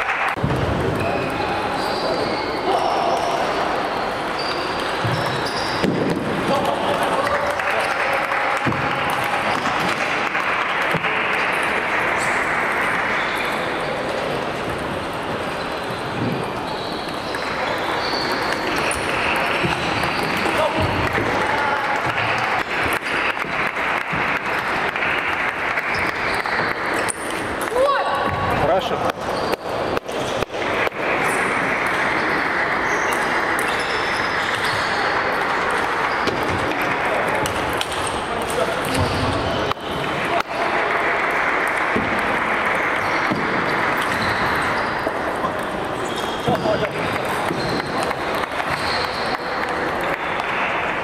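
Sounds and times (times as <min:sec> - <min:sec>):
many voices in large hall: 0:00.0 - 0:51.0.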